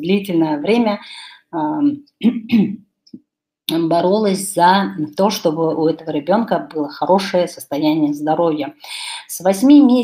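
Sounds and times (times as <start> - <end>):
woman clearing her throat: 2.2 - 2.8.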